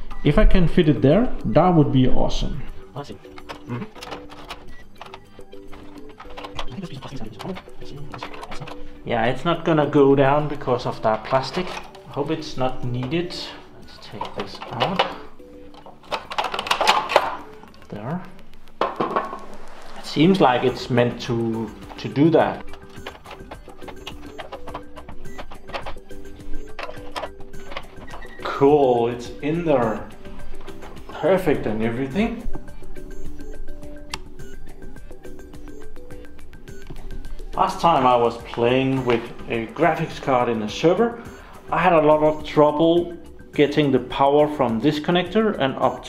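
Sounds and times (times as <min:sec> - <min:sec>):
soft background music: 0:00.0 - 0:46.0
metal hardware clicks and knocks: 0:03.2 - 0:08.9, 0:11.1 - 0:13.3, 0:13.9 - 0:17.9, 0:21.7 - 0:28.4.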